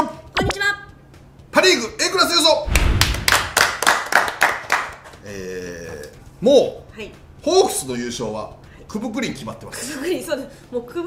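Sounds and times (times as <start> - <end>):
people clapping hands: 2.7 - 5.4.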